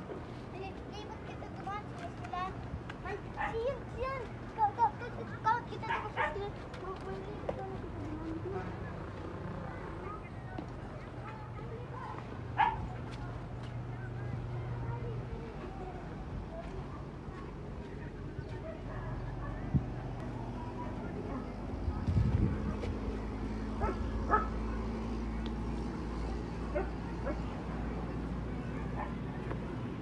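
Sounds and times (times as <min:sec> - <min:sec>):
dog barking: 0:03.4 - 0:03.6, 0:05.9 - 0:06.5, 0:12.6 - 0:12.9, 0:23.8 - 0:24.6, 0:26.7 - 0:27.5.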